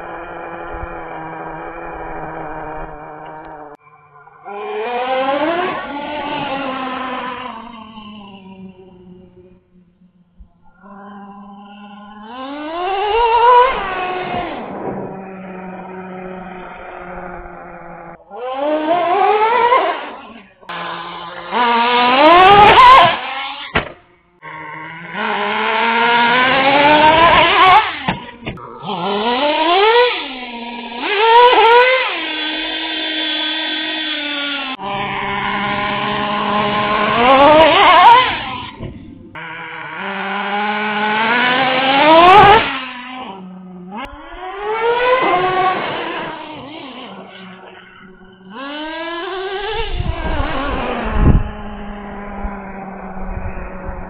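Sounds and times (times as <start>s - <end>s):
small nitro engine revving: 0.0s - 54.0s.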